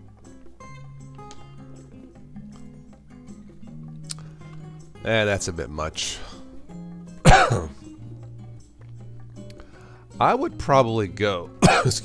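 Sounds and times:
quiet guitar music: 0.0s - 12.0s
man coughing: 7.2s - 7.9s, 11.6s - 12.0s.

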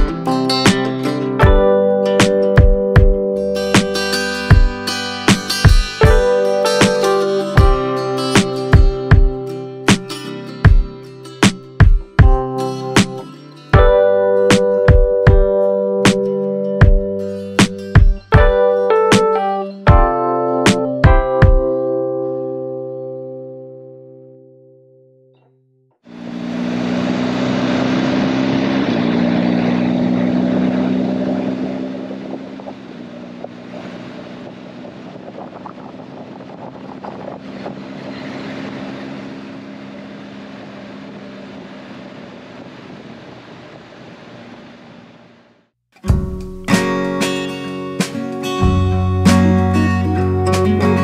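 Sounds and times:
motorcycle engine running: 0.0s - 10.0s, 10.6s - 13.1s, 26.1s - 42.6s
guitar music: 0.0s - 25.6s, 26.2s - 35.2s, 46.0s - 51.0s
music: 0.0s - 26.0s, 46.0s - 51.0s
wind rush: 26.2s - 45.1s.

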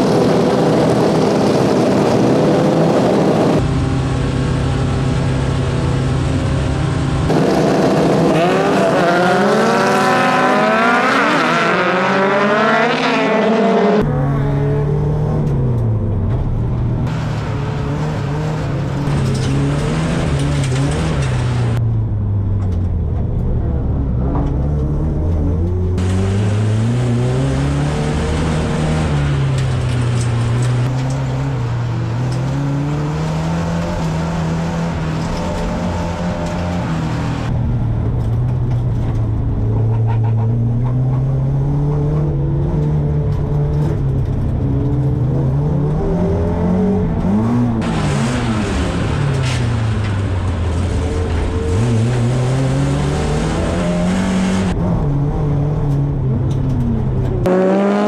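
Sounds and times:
car engine revving: 0.0s - 58.0s
road noise: 0.0s - 58.0s.

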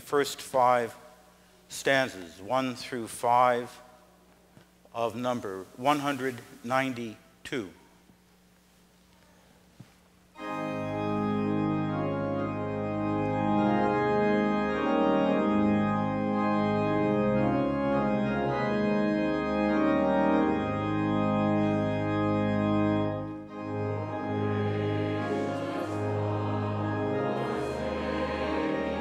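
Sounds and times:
church organ playing held chords: 0.0s - 4.2s, 5.0s - 7.8s, 10.3s - 29.0s.

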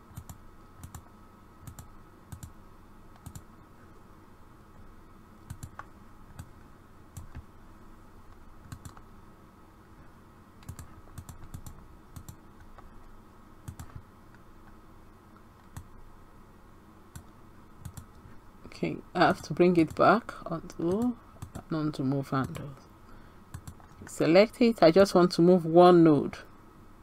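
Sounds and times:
faint steady hum: 0.0s - 27.0s
computer mouse clicking: 0.1s - 3.5s, 5.4s - 6.5s, 7.1s - 7.4s, 8.3s - 9.1s, 10.6s - 15.9s, 17.1s - 18.2s, 23.5s - 24.1s.

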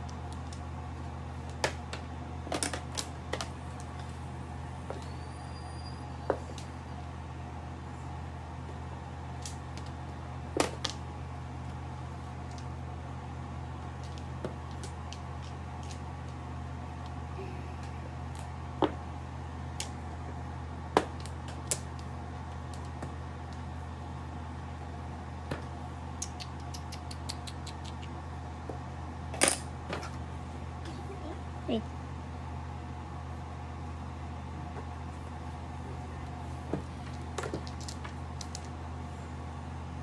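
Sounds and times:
low hum: 0.0s - 40.0s.

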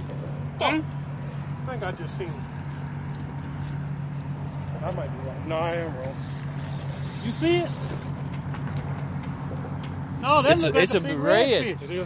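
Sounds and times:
distant motor drone: 0.0s - 12.0s.

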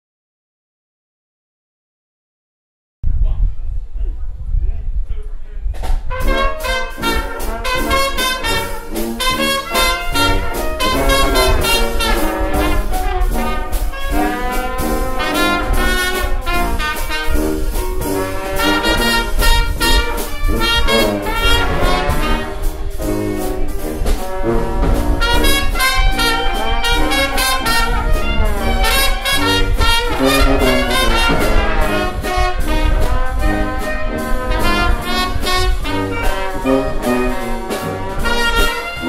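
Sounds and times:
brass and clarinet: 6.1s - 39.0s
jazz band playing: 6.1s - 39.0s.

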